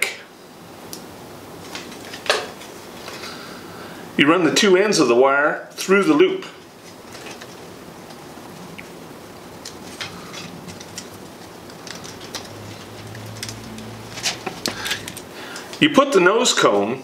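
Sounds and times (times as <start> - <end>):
wire clicking and scratching: 6.8 - 15.8.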